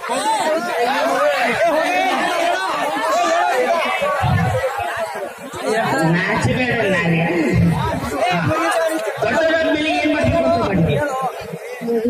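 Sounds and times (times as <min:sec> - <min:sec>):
voices chattering: 0:00.0 - 0:12.0
man talking into a microphone: 0:03.9 - 0:12.0.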